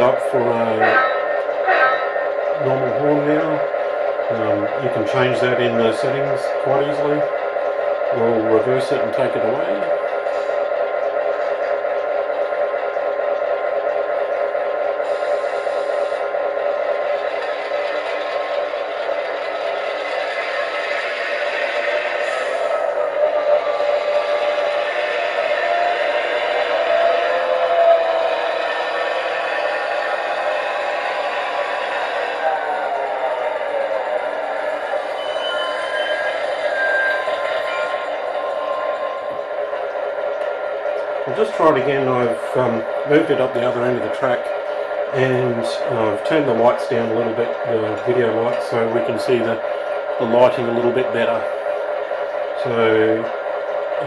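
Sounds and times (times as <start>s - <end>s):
model locomotive diesel engine sound: 0.0s - 54.0s.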